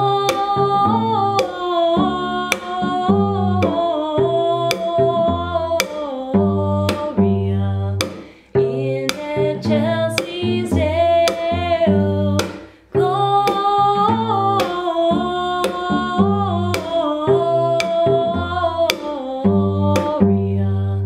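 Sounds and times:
woman singing a carol: 0:00.0 - 0:08.0, 0:08.6 - 0:21.0
percussive taps on cello: 0:00.0 - 0:21.0
plucked cello: 0:00.0 - 0:21.0.

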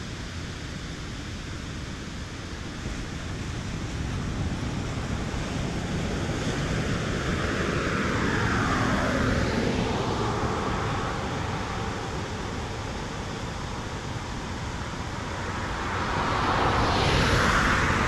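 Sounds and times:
car driving past: 0:15.5 - 0:18.0.

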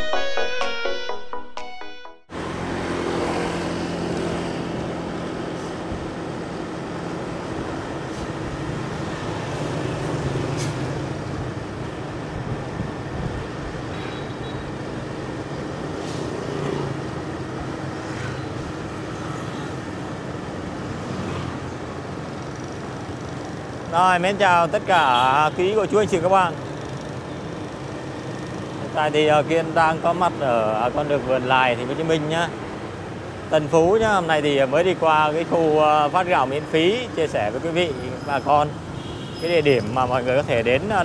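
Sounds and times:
motorbike engine and road noise: 0:02.3 - 0:41.0
light traffic: 0:02.4 - 0:41.0.

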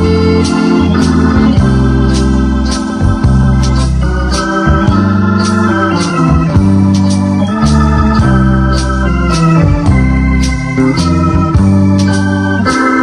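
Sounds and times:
accordion music: 0:00.0 - 0:13.0
light steady beat: 0:00.0 - 0:13.0.

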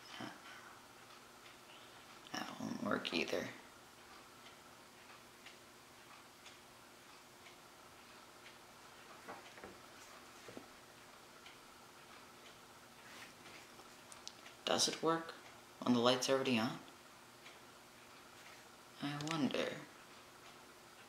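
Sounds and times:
wall clock ticking: 0:00.0 - 0:21.0
soft knocks: 0:09.2 - 0:09.8.

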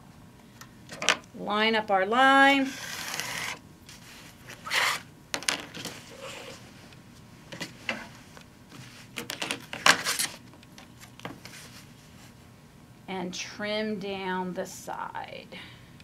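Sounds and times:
rotary cutter rolling through fabric: 0:02.6 - 0:03.6.

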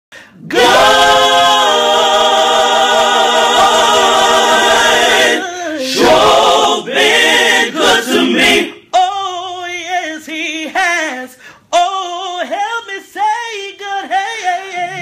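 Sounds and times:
a cappella quartet singing: 0:00.3 - 0:15.0.

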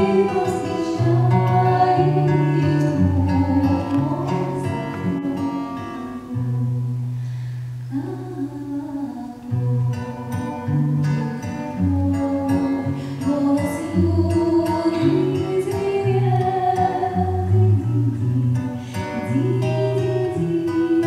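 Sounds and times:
woman singing into a microphone: 0:00.0 - 0:07.0, 0:07.9 - 0:21.0.

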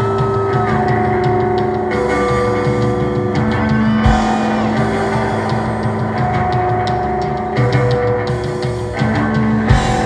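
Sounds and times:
bass guitar: 0:00.0 - 0:10.0
cymbals ticking: 0:00.0 - 0:10.0
drums: 0:00.0 - 0:10.0
sustained electric guitar notes: 0:00.0 - 0:10.0.

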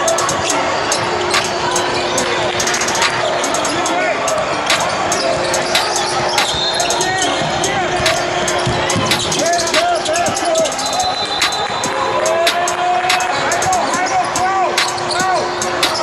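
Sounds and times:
chatter of people: 0:00.0 - 0:16.0.

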